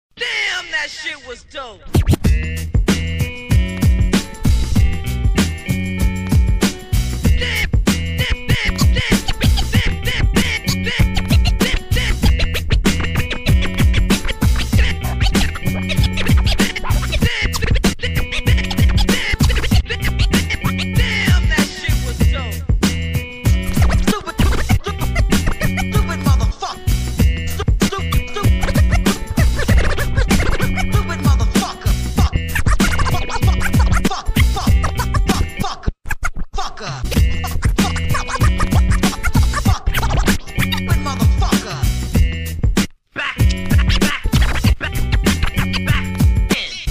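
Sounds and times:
hip-hop beat: 0:00.2 - 0:46.9
turntable scratching: 0:00.8 - 0:22.5, 0:23.2 - 0:46.9.

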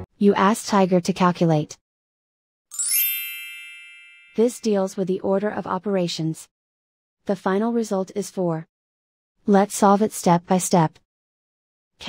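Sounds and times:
bright chime ringing: 0:02.7 - 0:04.8.

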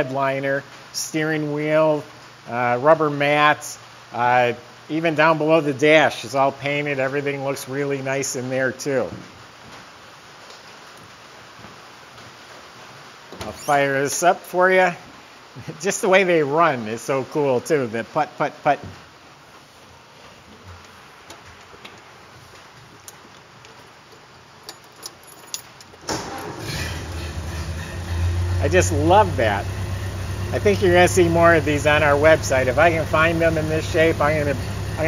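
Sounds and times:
room hiss: 0:00.0 - 0:35.0
footsteps on hard floor: 0:11.0 - 0:12.4
car engine starting and idling: 0:26.0 - 0:35.0.

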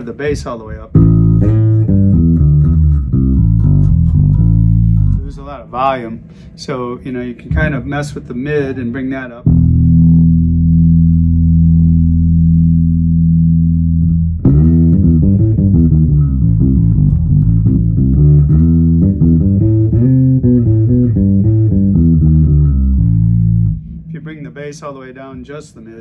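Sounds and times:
man speaking: 0:00.0 - 0:01.0, 0:05.2 - 0:09.5, 0:24.1 - 0:26.0
electric bass played fingerstyle: 0:00.0 - 0:06.4, 0:07.4 - 0:25.6.

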